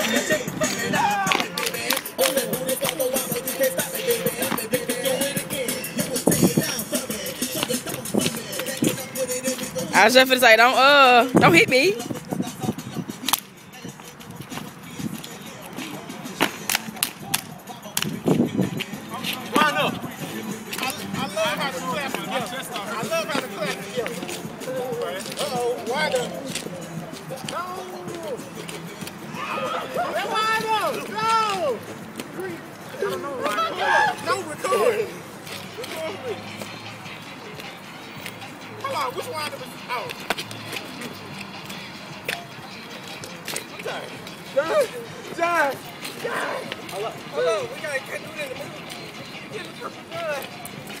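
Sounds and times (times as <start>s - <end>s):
men chanting shouts: 0.0s - 10.4s, 18.9s - 26.5s, 27.1s - 36.5s, 43.8s - 48.7s
men calling out: 0.0s - 12.2s, 18.9s - 36.6s, 43.7s - 50.5s
shoes tapping on pavement: 0.0s - 51.0s
stomps on pavement: 0.7s - 3.1s, 12.0s - 21.0s.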